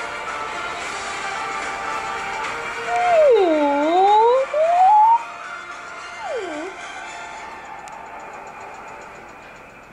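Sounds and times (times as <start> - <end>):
whale song moaning call: 2.9 - 5.2, 6.2 - 6.8.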